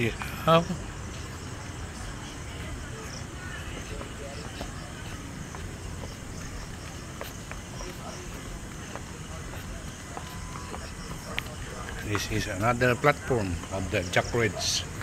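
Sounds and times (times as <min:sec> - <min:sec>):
faint distant voices: 0:00.0 - 0:15.0.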